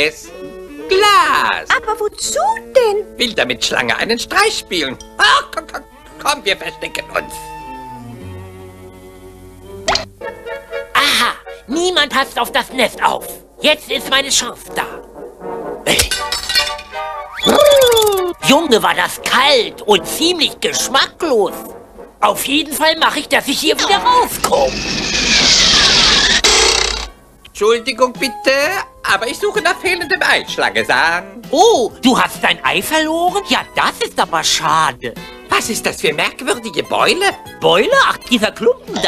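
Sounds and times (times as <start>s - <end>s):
cartoon music with held notes: 0.1s - 11.7s, 15.4s - 18.6s
sharp pop sound effect: 9.9s - 10.1s
cartoon whoosh with falling whistle: 17.3s - 18.4s.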